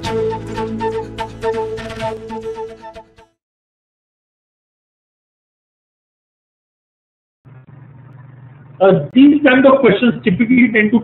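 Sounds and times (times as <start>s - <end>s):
faint low hum: 7.5s - 9.3s
man speaking: 8.8s - 11.0s.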